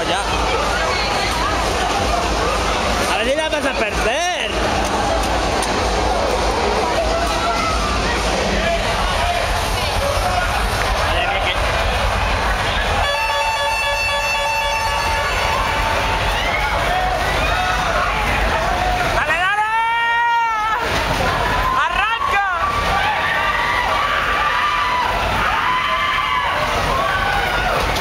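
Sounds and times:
constant noisy rumble: 0:00.0 - 0:28.0
crowd shouting and talking: 0:00.0 - 0:28.0.

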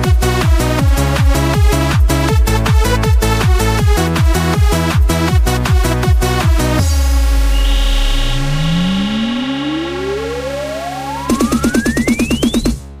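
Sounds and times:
rising synth sweep: 0:06.8 - 0:12.8
sustained synth chord: 0:06.8 - 0:12.8
rapid kick-drum roll: 0:11.2 - 0:12.8.

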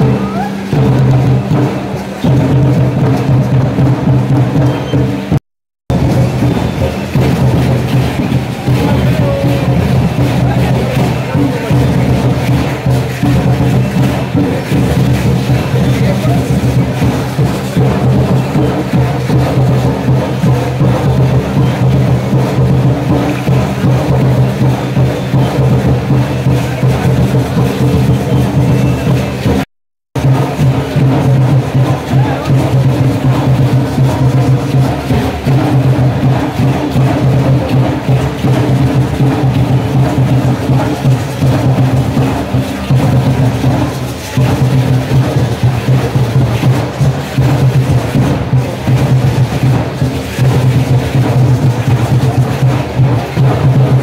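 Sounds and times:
live dance music with drumming: 0:00.0 - 0:54.0.

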